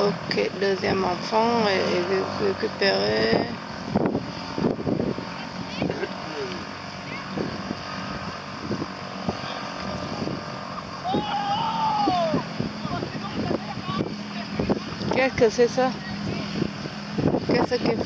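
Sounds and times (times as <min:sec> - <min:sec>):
distant outboard motor drone: 0:00.0 - 0:18.0
faint voices across water: 0:05.2 - 0:08.2, 0:09.2 - 0:18.0
long rising-and-falling call: 0:10.8 - 0:12.6.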